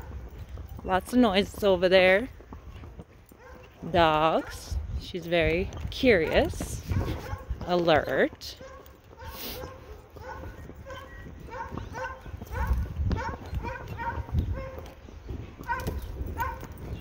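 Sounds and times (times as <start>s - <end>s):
dogs barking: 3.2s - 4.7s, 6.2s - 7.8s, 8.5s - 15.0s, 15.6s - 17.0s.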